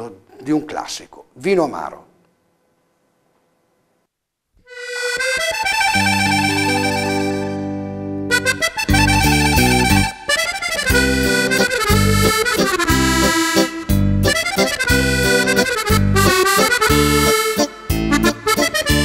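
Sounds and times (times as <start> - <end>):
piano accordion playing: 4.6 - 19.0.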